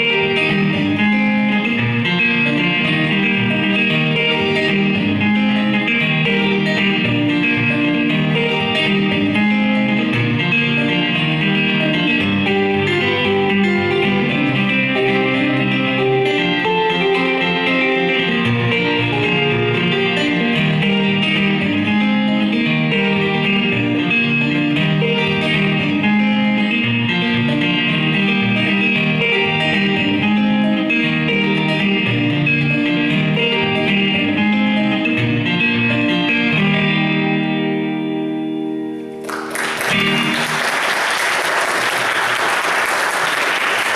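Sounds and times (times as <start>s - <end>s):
acoustic guitar playing blues: 0.0s - 42.4s
audience applause: 39.2s - 43.9s.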